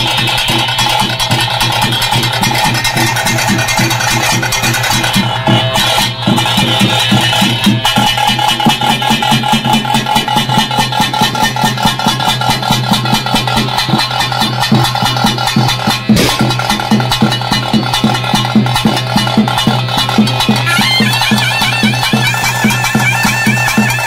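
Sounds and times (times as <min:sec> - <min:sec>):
quick drumbeats: 0:00.0 - 0:24.0
sharp drum hit: 0:15.9 - 0:17.4.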